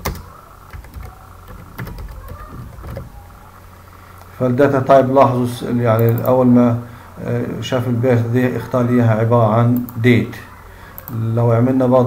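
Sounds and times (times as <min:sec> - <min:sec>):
typing on computer keyboard: 0:00.0 - 0:03.2
steady low hum: 0:00.0 - 0:12.0.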